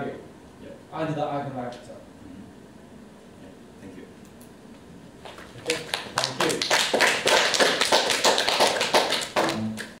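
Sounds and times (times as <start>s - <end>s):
small audience clapping: 5.2s - 10.0s.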